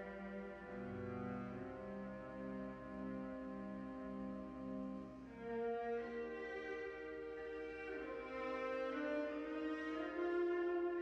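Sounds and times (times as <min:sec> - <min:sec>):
church organ chords: 0:00.0 - 0:05.2
cello bowing long notes: 0:00.0 - 0:11.0.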